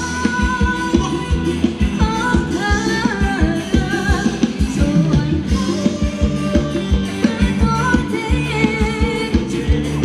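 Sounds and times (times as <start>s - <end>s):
live dance band playing: 0.0s - 10.0s
person singing: 0.0s - 10.0s
steady drum beat: 0.0s - 10.0s.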